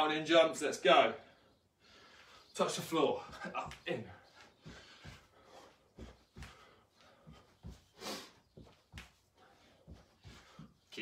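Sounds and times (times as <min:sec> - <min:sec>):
sock feet thudding on rug: 0:03.2 - 0:10.9
sharp breath out: 0:07.9 - 0:08.4.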